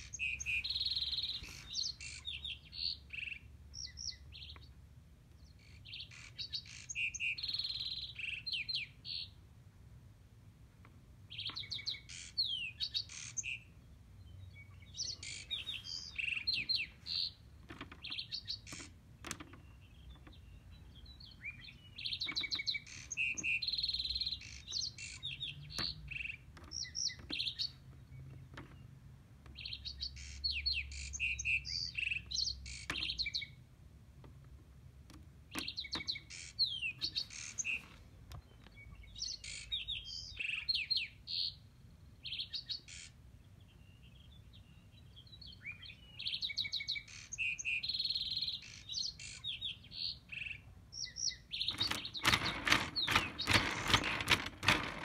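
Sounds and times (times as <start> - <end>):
songbirds chirping and singing: 0.0 - 9.5, 10.8 - 55.0.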